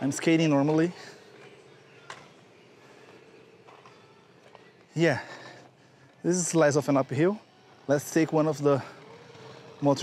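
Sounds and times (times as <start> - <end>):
inline skate wheels rolling on asphalt: 0.0 - 5.0, 5.6 - 10.0.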